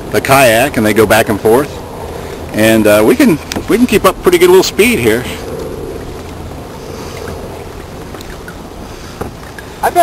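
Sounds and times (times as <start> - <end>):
wind on the microphone: 0.7 - 10.0
water sloshing along a hull: 1.3 - 10.0.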